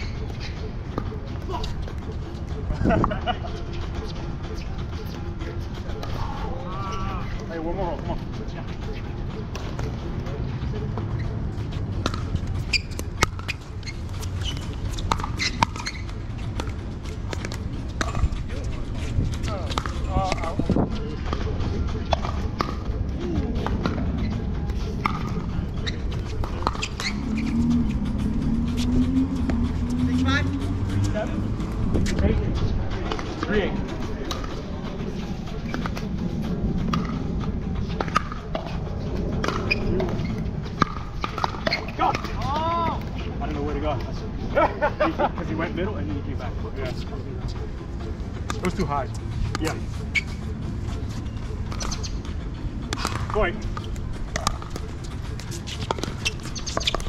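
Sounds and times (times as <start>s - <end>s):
paddles hitting plastic ball: 15.0s - 15.9s.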